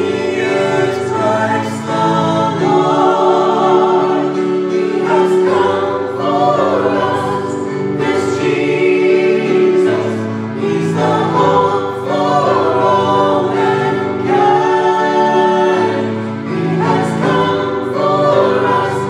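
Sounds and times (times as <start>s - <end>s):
mixed vocal group singing: 0.0s - 19.0s.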